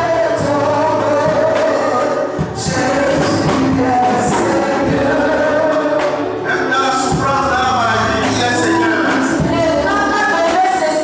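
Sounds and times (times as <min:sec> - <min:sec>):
drums: 0:00.0 - 0:11.0
group singing gospel: 0:00.0 - 0:11.0
keyboard: 0:00.0 - 0:11.0.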